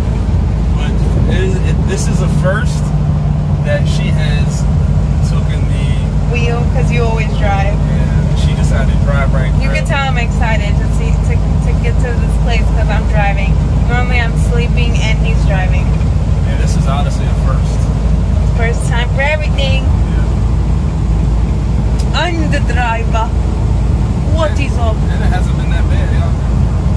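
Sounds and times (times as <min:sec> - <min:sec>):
truck engine and road rumble: 0:00.0 - 0:26.9
voices talking: 0:00.0 - 0:26.9.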